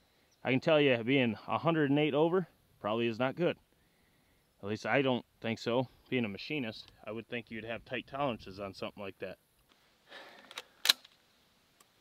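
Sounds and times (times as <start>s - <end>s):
shotgun handling rustle: 9.6s - 12.0s.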